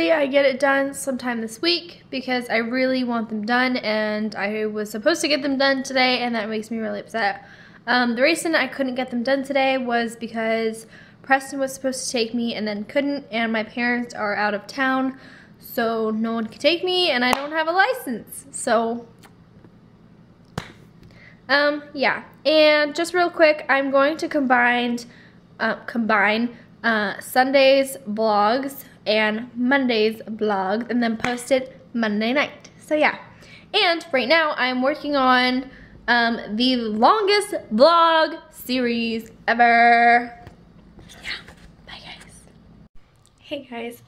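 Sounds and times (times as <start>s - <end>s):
woman whispering: 41.1s - 42.6s.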